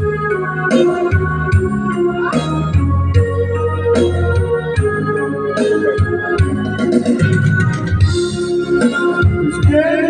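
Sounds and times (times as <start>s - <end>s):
electronic organ keyboard chords: 0.0s - 10.0s
steady bass: 0.0s - 10.0s.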